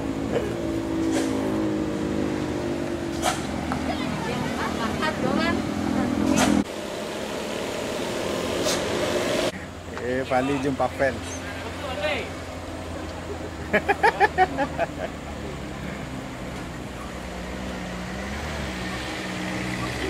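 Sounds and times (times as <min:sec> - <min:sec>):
passing road traffic: 0:00.0 - 0:20.0
vehicle engine humming: 0:00.0 - 0:20.0.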